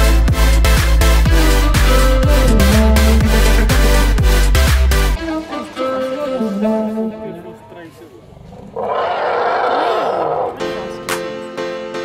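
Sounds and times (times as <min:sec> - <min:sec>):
background music: 0:00.0 - 0:07.9, 0:10.4 - 0:12.0
elephant trumpeting: 0:08.2 - 0:10.8.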